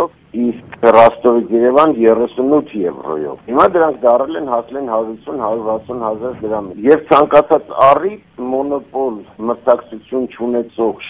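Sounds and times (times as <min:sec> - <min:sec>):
man talking over telephone: 0:00.0 - 0:11.0.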